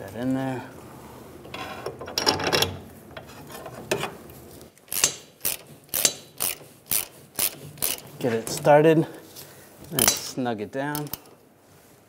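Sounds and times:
hand ratchet clicking: 0:04.9 - 0:08.1, 0:10.9 - 0:11.3.

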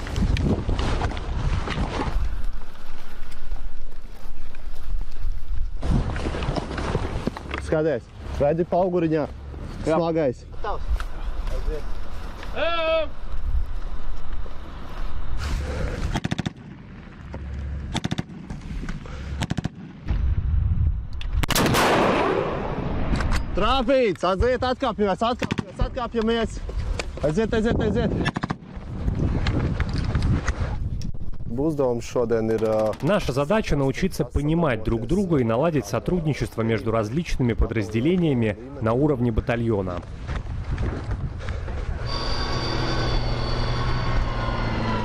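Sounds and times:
wind buffeting microphone: 0:00.0 - 0:07.3, 0:26.6 - 0:32.0, 0:39.4 - 0:42.1
rifle and sling rustling and knocking: 0:00.0 - 0:07.9
rocket launcher blast: 0:21.4 - 0:23.3
automatic rifle fire: 0:21.5 - 0:22.7.

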